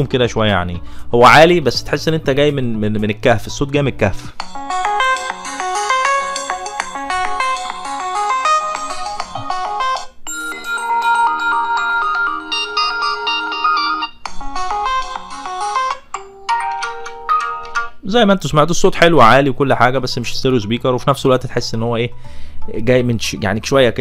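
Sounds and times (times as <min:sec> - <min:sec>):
phone ringtone melodies: 0:04.4 - 0:18.0.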